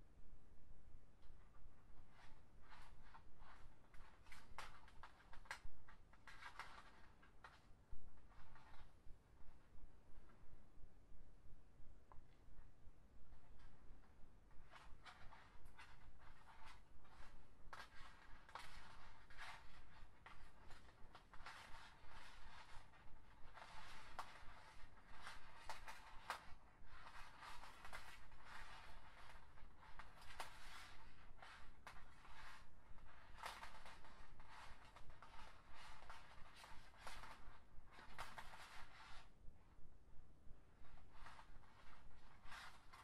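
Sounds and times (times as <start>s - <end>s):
plastic strings rustling and clicking: 2.1s - 9.0s, 14.6s - 39.4s, 40.7s - 43.0s.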